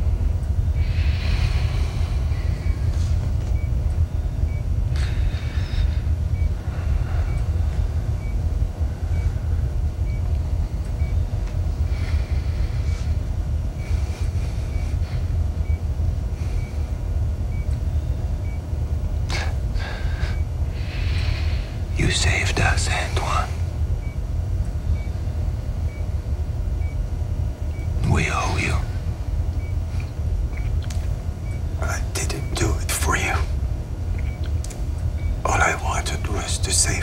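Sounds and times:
patient monitor beeps: 0.0s - 13.2s, 13.8s - 37.0s
low ambient hum: 0.0s - 37.0s.

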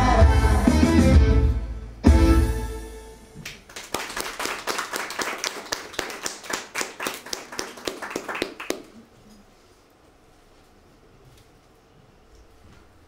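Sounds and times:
music: 0.0s - 3.4s
sparse audience applause: 3.7s - 9.1s.

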